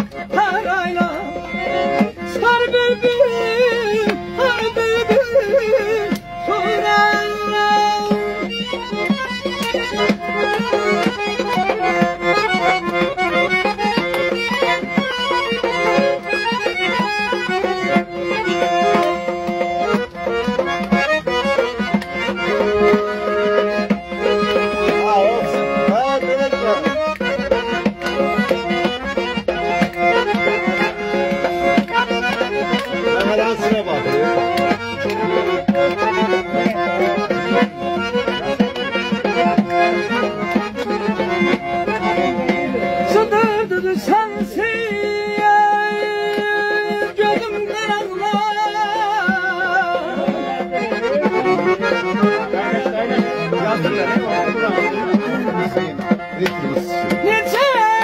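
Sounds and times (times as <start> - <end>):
button accordion folk melody: 0.0 - 58.0.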